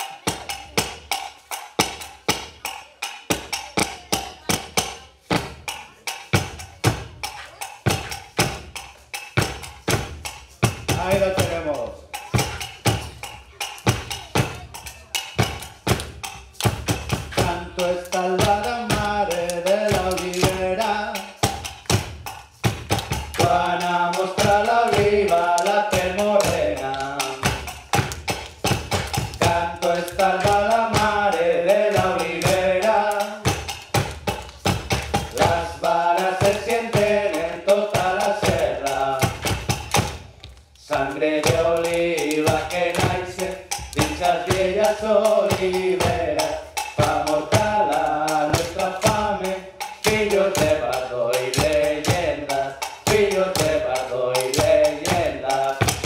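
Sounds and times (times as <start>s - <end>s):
wooden sticks knocking rhythmically: 0.0s - 56.0s
person singing: 17.3s - 21.4s, 23.3s - 27.7s, 29.4s - 33.6s, 35.3s - 39.5s, 40.8s - 56.0s.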